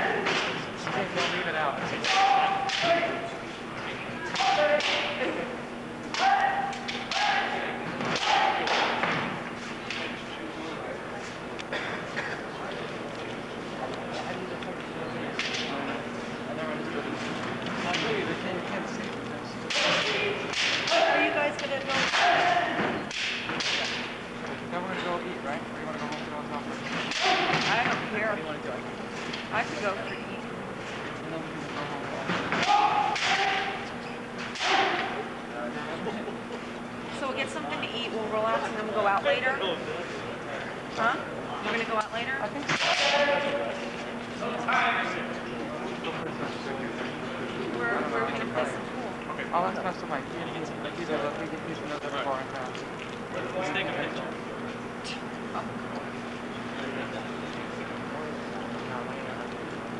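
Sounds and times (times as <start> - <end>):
murmur of chatter: 0.0 - 59.9
people shouting: 2.0 - 3.4, 4.2 - 5.4, 6.1 - 9.1, 19.7 - 23.9, 27.1 - 27.7, 32.5 - 33.9, 34.5 - 35.3, 42.8 - 43.6
bamboo swords cracking: 22.0 - 24.1, 32.5 - 33.7, 34.5 - 35.1.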